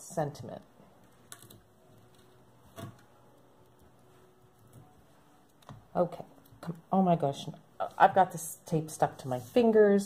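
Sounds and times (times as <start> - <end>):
tape handling noise: 1.0 - 6.7.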